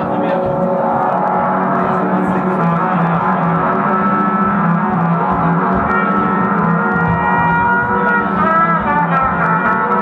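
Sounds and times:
drum kit: 0.0 - 10.0
electric guitar: 0.0 - 10.0
trumpet: 0.4 - 10.0.

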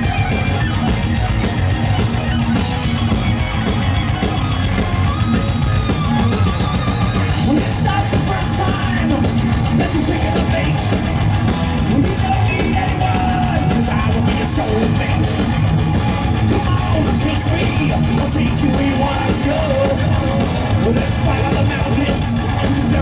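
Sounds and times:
metal band playing live: 0.0 - 23.0.

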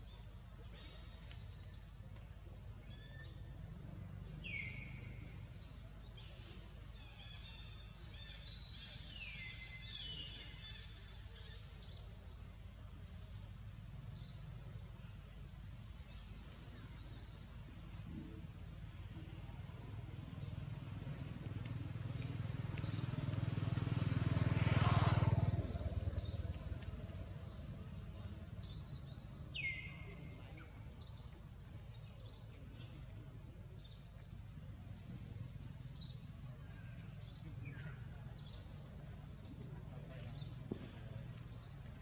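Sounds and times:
small birds chirping: 0.0 - 42.0
vehicle engine passing: 20.3 - 29.5.

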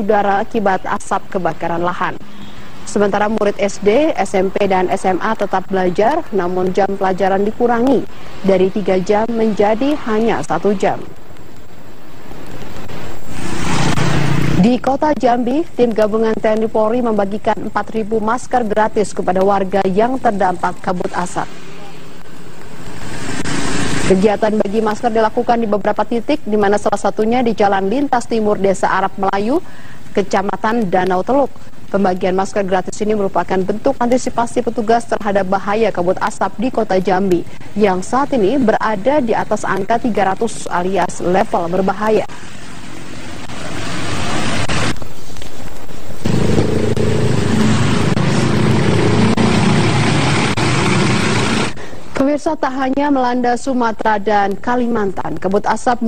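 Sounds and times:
trucks and vehicles passing: 1.6 - 11.2, 12.3 - 14.9, 20.9 - 25.0, 41.7 - 45.0, 46.2 - 51.8
road traffic rushing: 2.0 - 11.2, 12.2 - 14.8, 21.0 - 25.0, 42.2 - 45.0, 46.2 - 51.9.

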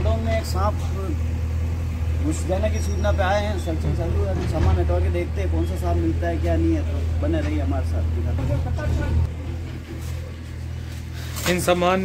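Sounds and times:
man talking: 2.2 - 9.3, 11.4 - 12.0.

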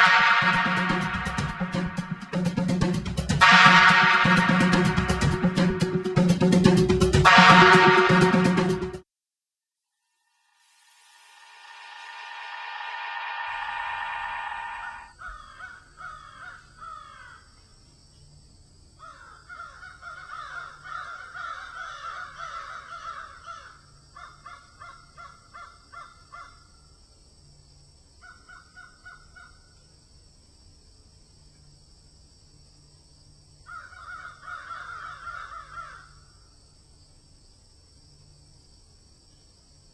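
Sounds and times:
sustained musical chord: 0.0 - 9.0
crows cawing: 12.6 - 17.5, 19.0 - 26.6, 33.7 - 36.2.

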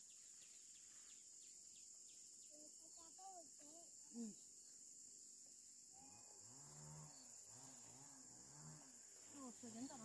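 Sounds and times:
crickets buzzing: 0.0 - 10.0.

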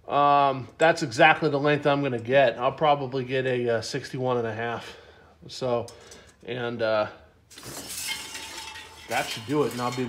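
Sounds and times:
metallic rasp and clink: 7.5 - 10.0.

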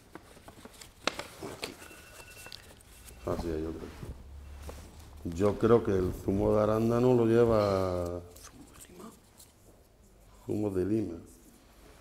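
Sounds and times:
paper rustling: 0.0 - 9.8.

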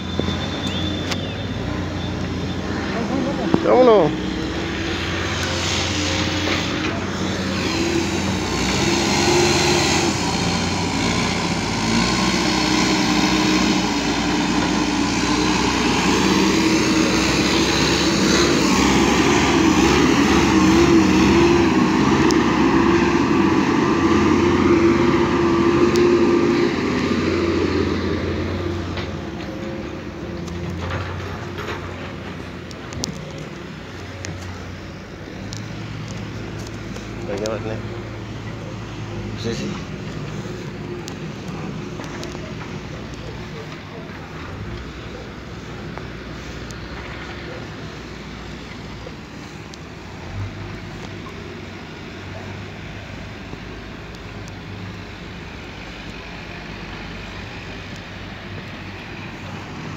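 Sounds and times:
heavy machinery engine running: 0.0 - 59.9.

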